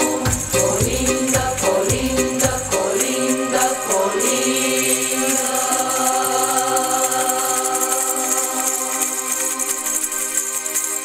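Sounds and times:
women singing together: 0.0s - 9.7s.

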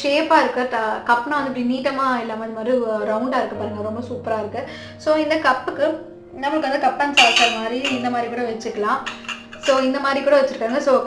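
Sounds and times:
metal cups and saucers clinking: 7.0s - 10.1s.

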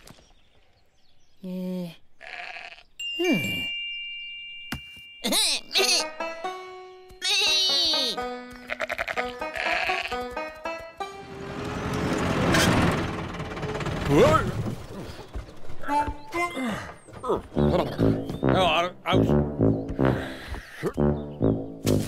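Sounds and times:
cartoon sheep bleating: 2.2s - 2.8s, 5.3s - 6.2s, 7.2s - 10.2s.

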